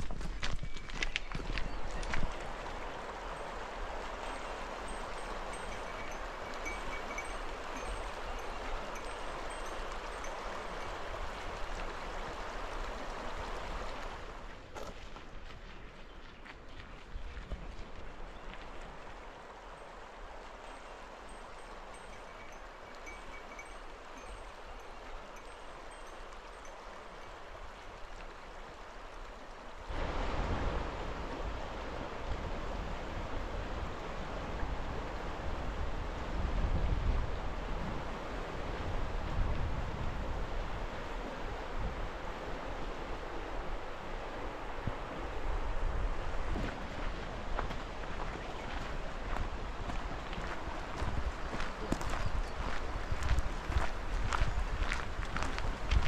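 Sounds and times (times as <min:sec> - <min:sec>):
footsteps on gravel: 0:00.0 - 0:02.6, 0:14.6 - 0:19.0, 0:46.6 - 0:56.0
river rushing over stones: 0:00.0 - 0:14.7, 0:18.7 - 0:36.3
wind buffeting microphone: 0:15.2 - 0:56.0.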